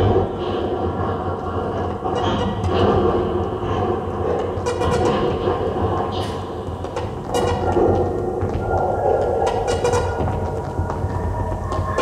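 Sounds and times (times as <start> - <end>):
rumbling electronic noise texture: 0.0 - 12.0.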